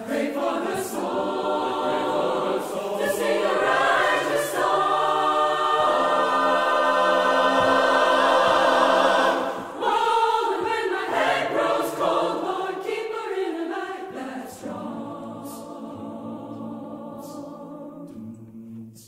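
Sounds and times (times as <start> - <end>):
choir singing gospel harmony: 0.0 - 19.0.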